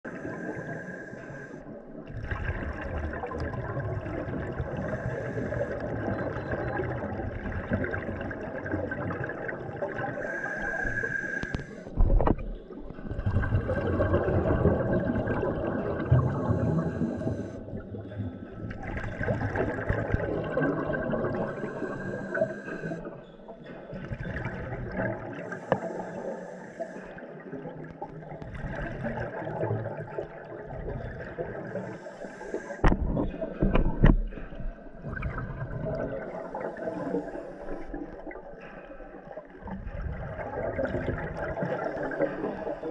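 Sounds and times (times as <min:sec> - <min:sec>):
underwater low rumble: 0:00.0 - 0:42.9.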